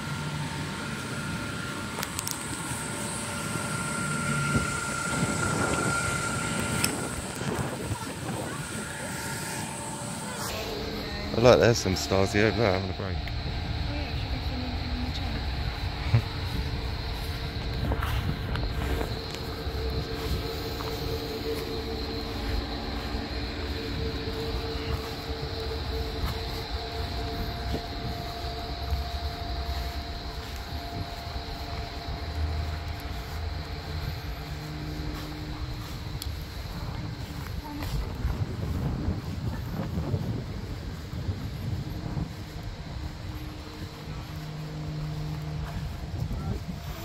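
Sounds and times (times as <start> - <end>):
mechanical drone: 0.0 - 47.0
wind rumbling on microphone: 0.0 - 47.0.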